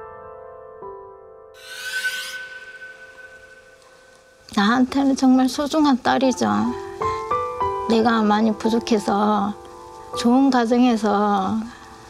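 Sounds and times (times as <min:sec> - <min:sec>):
background music held tones: 0:00.1 - 0:12.0
shimmering sound effect sweep: 0:01.6 - 0:04.6.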